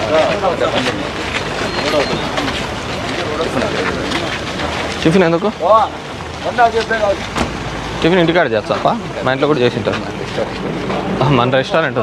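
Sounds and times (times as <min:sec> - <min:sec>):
outdoor noise haze: 0:00.0 - 0:12.0.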